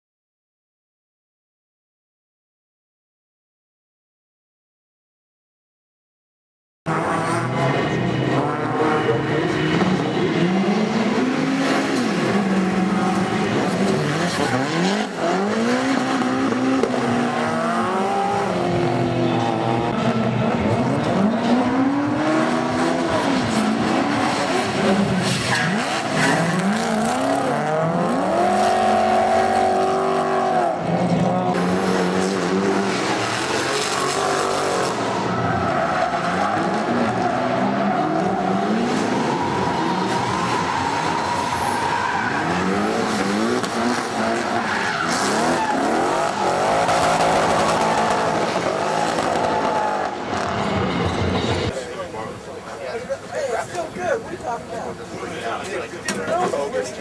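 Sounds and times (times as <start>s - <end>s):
car engines revving: 6.9s - 57.0s
tyre squeal: 33.8s - 43.2s.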